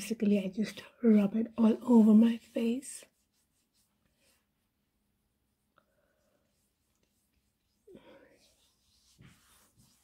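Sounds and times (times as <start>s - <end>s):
fingertips rubbing skin: 1.6s - 4.4s, 6.4s - 10.0s.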